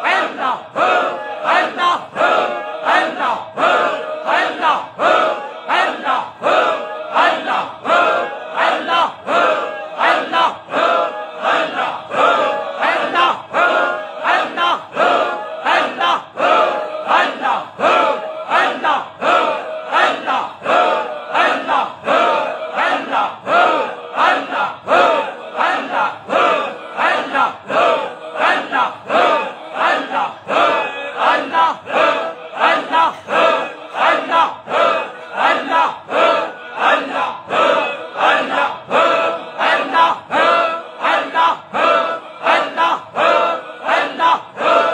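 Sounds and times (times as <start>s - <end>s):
men chanting in unison: 0.0s - 44.9s.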